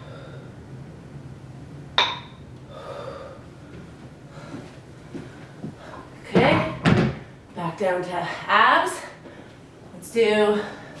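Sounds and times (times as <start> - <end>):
metal dumbbells clinking: 2.0 - 2.4
woman's voice: 6.2 - 6.8, 7.6 - 9.2, 9.9 - 10.9.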